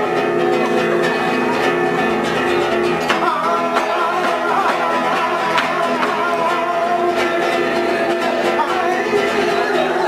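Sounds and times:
acoustic guitar playing: 0:00.0 - 0:10.0
cajon struck by hand: 0:02.4 - 0:10.0.

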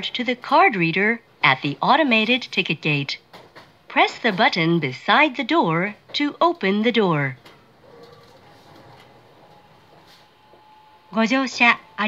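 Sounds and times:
train car background noise: 0:00.0 - 0:12.0
synthesized announcement voice: 0:11.1 - 0:12.0.

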